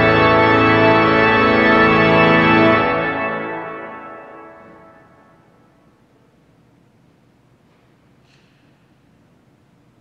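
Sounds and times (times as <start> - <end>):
pipe organ chord reverberating: 0.0 - 5.8.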